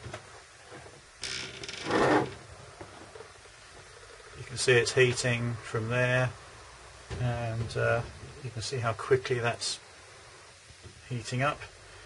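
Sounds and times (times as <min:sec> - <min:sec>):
plastic scraping on worktop: 0:01.6 - 0:02.4.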